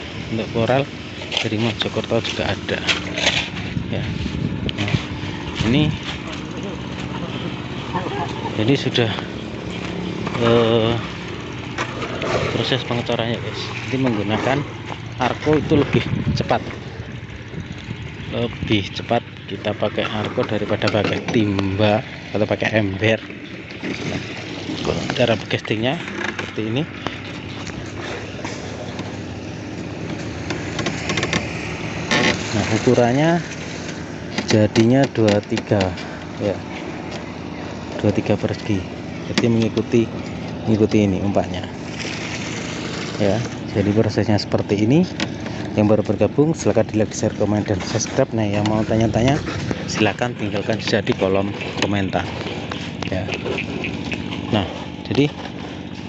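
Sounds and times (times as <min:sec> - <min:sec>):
engine running steadily: 0:00.0 - 0:56.0.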